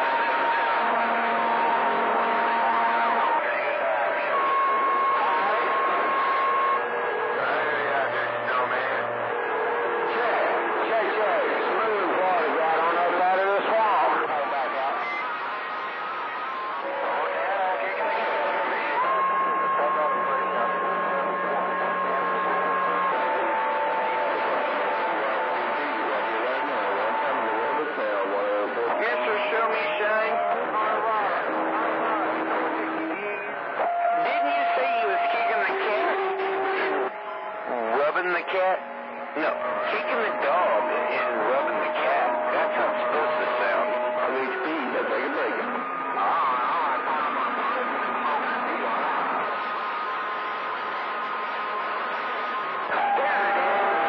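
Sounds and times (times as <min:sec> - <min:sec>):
garbled radio voices: 0:00.0 - 0:54.0.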